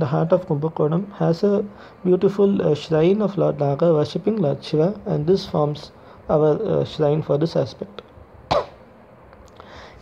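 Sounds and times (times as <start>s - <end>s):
man speaking: 0.0s - 8.0s.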